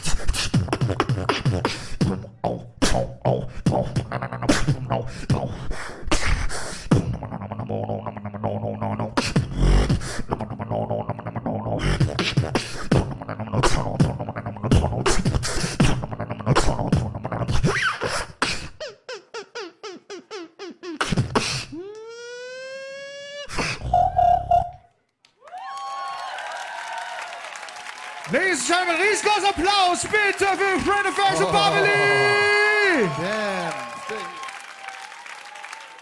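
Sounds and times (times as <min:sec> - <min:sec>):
beatboxing into microphone: 0:00.0 - 0:24.9.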